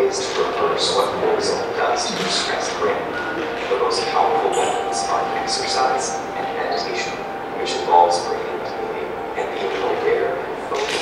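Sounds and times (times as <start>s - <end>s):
narration over loudspeakers: 0.0s - 11.0s
steady tone: 0.0s - 11.0s.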